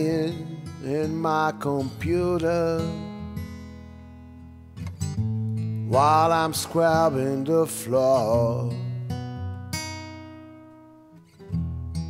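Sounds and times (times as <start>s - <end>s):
guitar chords ringing: 0.0s - 12.0s.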